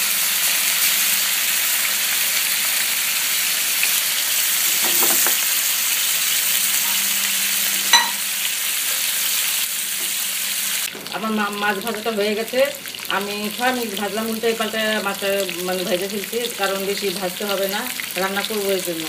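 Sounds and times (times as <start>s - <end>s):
fish sizzling in hot oil: 0.0s - 19.0s
sharp ringing clink: 7.9s - 8.2s.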